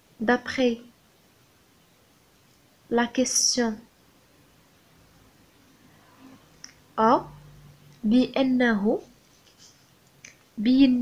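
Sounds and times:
woman speaking: 0:00.2 - 0:00.9, 0:02.9 - 0:03.9, 0:06.8 - 0:09.1, 0:10.6 - 0:11.0
pen scratching on paper: 0:08.9 - 0:10.0.

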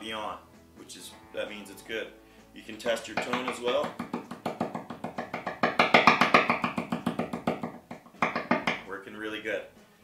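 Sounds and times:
rapid tapping on guitar pickup: 0:02.9 - 0:08.9.

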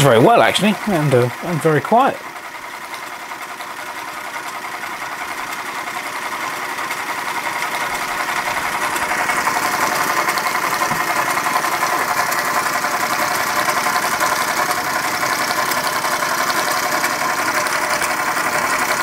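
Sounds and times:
toy steam engine chattering: 0:00.0 - 0:19.0.

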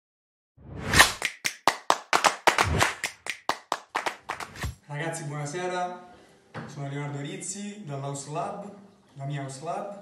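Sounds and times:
sharp hand claps: 0:01.0 - 0:04.7.

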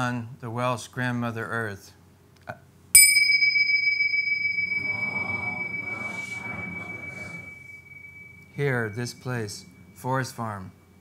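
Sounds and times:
handheld bowl bell ringing: 0:03.0 - 0:11.0.

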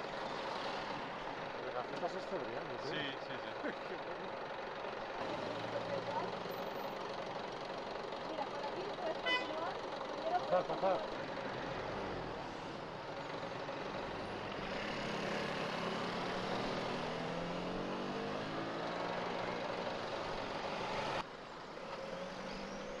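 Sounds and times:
bus engine running: 0:00.0 - 0:23.0.

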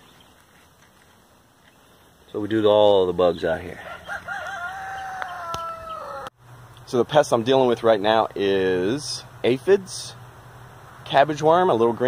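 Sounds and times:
rooster crowing: 0:03.8 - 0:06.4.

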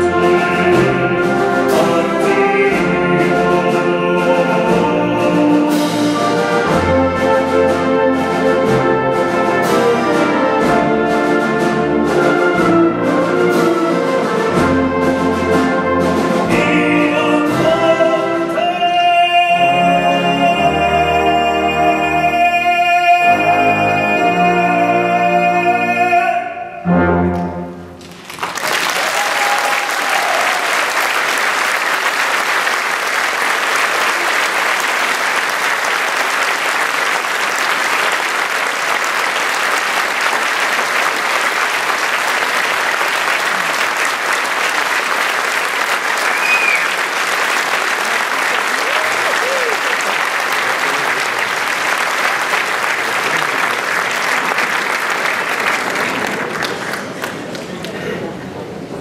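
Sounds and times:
large audience applauding: 0:28.0 - 0:58.4.

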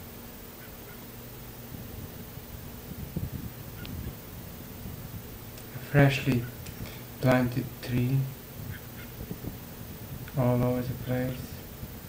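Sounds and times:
rumbling and thumping on microphone: 0:01.7 - 0:12.0.

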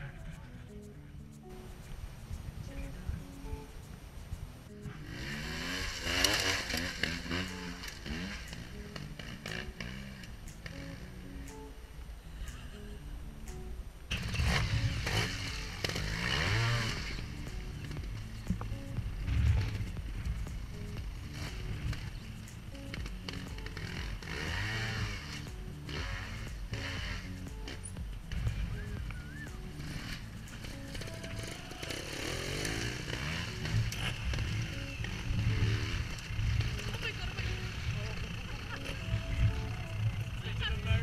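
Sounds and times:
background music: 0:00.0 - 0:41.0
motorcycle engine revving: 0:01.4 - 0:12.9, 0:13.5 - 0:41.0.

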